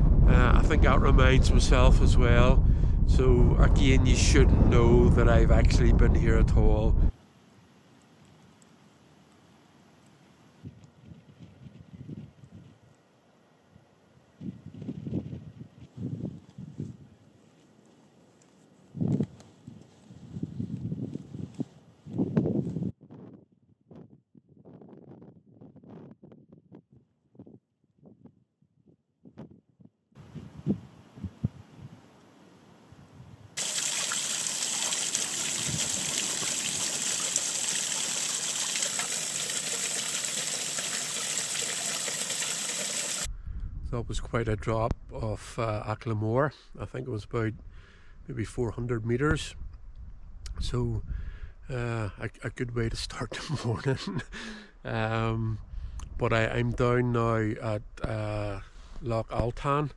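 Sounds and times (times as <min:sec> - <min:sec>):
wind on microphone: 0:00.0 - 0:07.2, 0:10.6 - 0:12.8, 0:14.4 - 0:17.2, 0:18.9 - 0:32.0, 0:35.4 - 0:37.0, 0:43.2 - 0:45.2, 0:49.2 - 0:51.6
running water rushing: 0:33.6 - 0:43.3.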